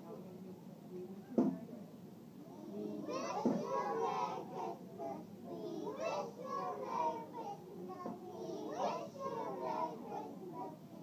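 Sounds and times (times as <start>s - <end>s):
young children's voices: 2.5s - 10.9s.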